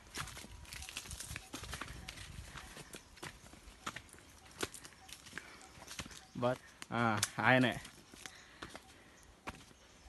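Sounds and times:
footsteps on rocky dirt path: 0.0s - 10.0s.

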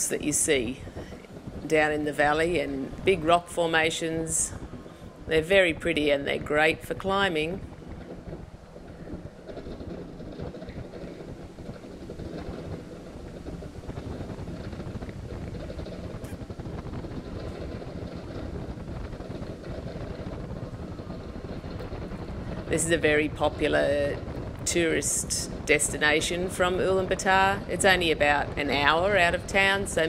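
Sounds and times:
car road noise rumble: 0.0s - 30.0s
wind noise: 0.0s - 30.0s.

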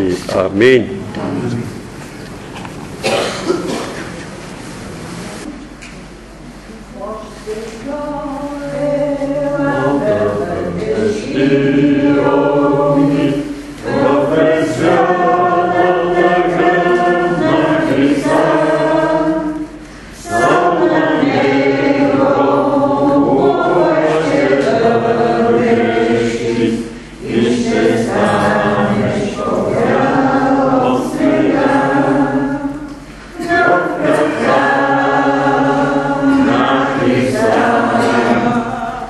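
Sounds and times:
congregation singing a hymn: 7.0s - 39.0s.

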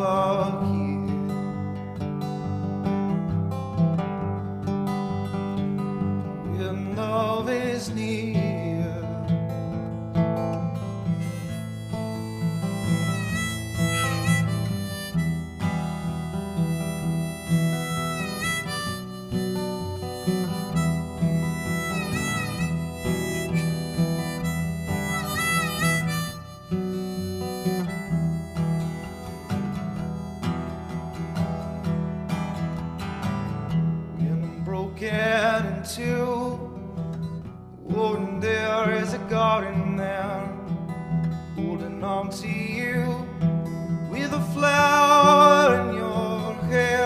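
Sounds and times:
acoustic guitar strumming: 0.0s - 47.0s
harmonica melody: 10.7s - 33.9s, 42.4s - 47.0s.

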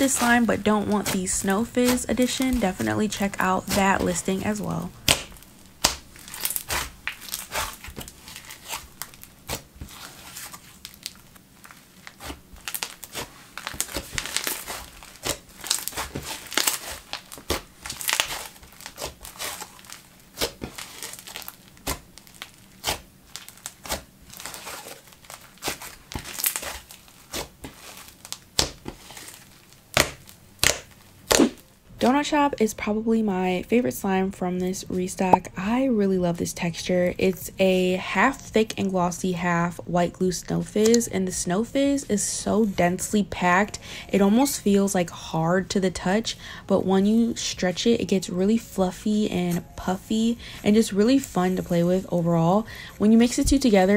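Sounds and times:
slime crackling and popping: 0.0s - 31.7s.

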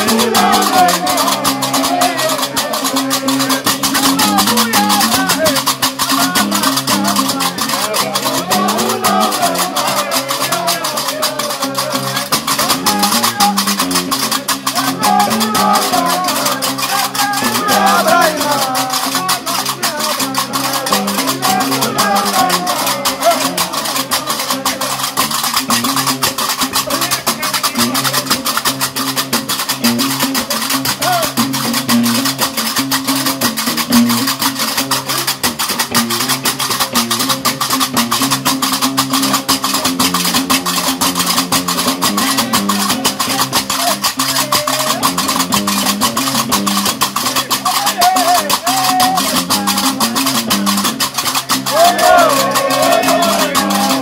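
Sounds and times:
person singing short phrases: 0.0s - 13.9s, 14.6s - 24.8s
bass lute playing low bass line: 0.0s - 47.8s, 48.5s - 54.0s
metallic clatter of iron castanets: 0.0s - 54.0s.

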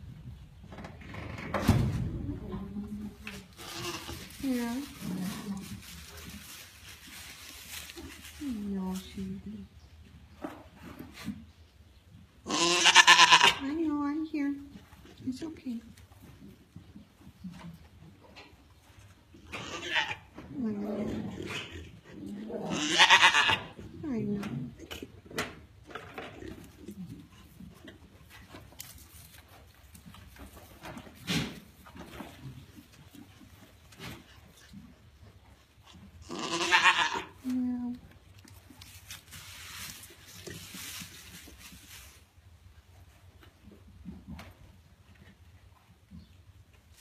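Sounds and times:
goats rustling in wood shavings: 2.9s - 9.7s, 26.6s - 45.7s
goat bleating: 3.6s - 4.2s, 12.5s - 13.6s, 19.5s - 20.3s, 22.7s - 23.7s, 36.2s - 37.4s.

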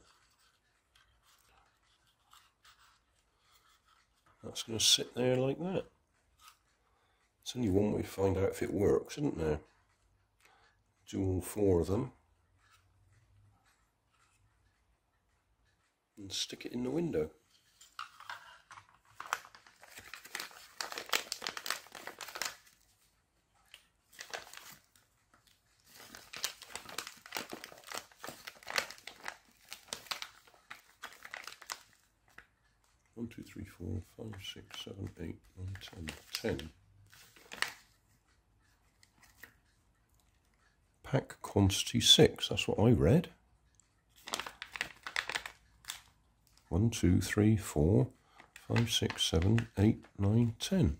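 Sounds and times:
plastic packet crinkling: 18.0s - 22.9s, 23.7s - 32.5s, 35.7s - 37.9s, 44.2s - 46.1s, 48.3s - 50.2s.

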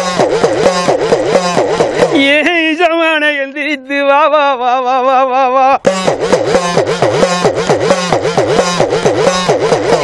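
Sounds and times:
hourglass drum pitch-bending beats: 0.0s - 3.1s, 5.8s - 10.0s.

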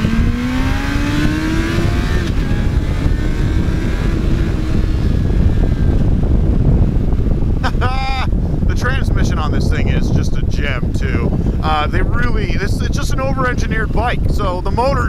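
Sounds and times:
motorcycle engine accelerating: 0.0s - 15.0s
wind rush on microphone: 0.0s - 15.0s.

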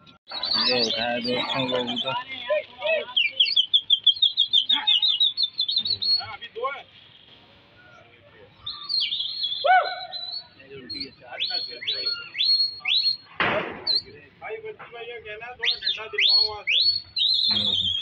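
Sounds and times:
high chirps: 0.0s - 14.2s, 15.6s - 18.0s
downward sweeping whistles: 8.6s - 13.3s, 15.6s - 18.0s.

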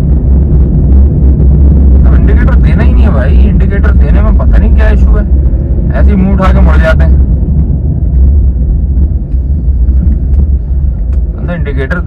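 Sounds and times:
road traffic rumble: 0.0s - 12.0s
wind noise: 0.0s - 12.0s
man talking: 2.0s - 5.3s, 5.9s - 7.2s, 11.4s - 12.0s.

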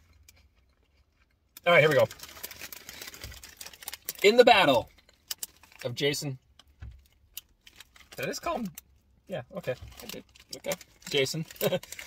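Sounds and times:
chip bags crinkling: 1.6s - 6.0s, 7.6s - 8.8s, 9.5s - 12.0s.

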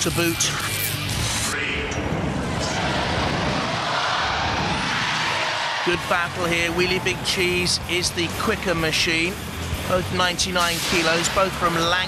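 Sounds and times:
audience cheering and shouting: 2.6s - 7.8s.

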